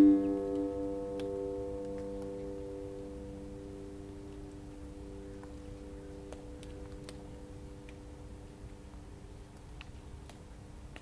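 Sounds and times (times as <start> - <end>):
harp notes ringing: 0.0 - 3.2.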